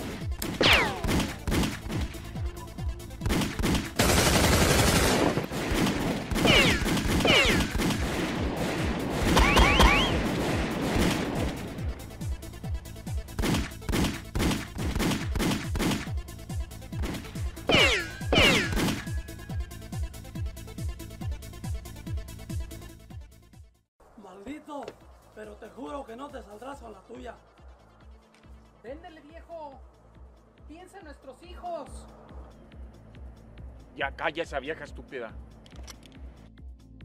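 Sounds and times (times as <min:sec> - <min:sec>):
handgun shots: 0:00.3 - 0:02.1, 0:06.3 - 0:08.0, 0:09.3 - 0:10.2, 0:17.0 - 0:19.2
falling whines: 0:09.4 - 0:10.2.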